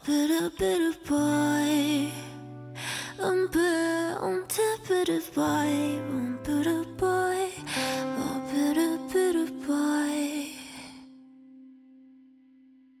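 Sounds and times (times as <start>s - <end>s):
female lead vocal: 0.0s - 11.5s.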